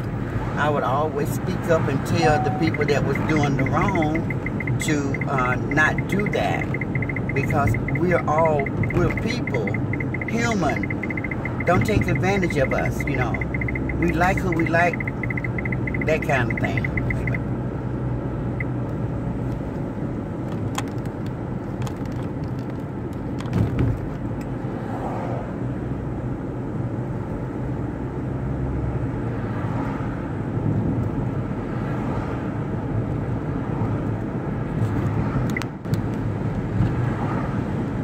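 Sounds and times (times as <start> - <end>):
car road noise rumble: 0.0 - 38.0.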